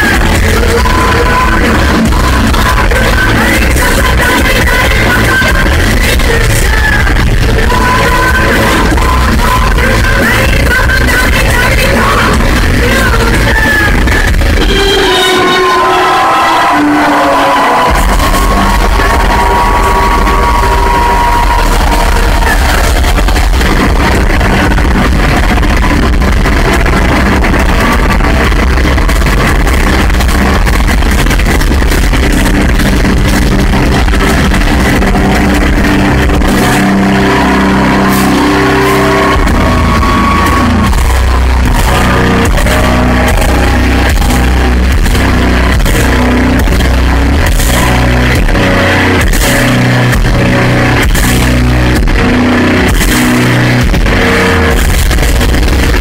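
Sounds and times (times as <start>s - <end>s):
heavy metal band playing live: 0.0s - 56.0s.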